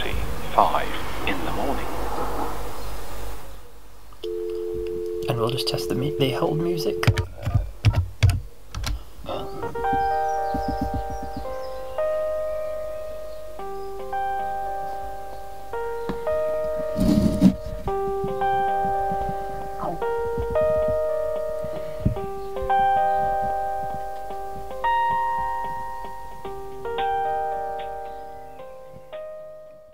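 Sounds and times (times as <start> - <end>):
telephone hold music: 4.2 - 7.3, 9.3 - 29.9.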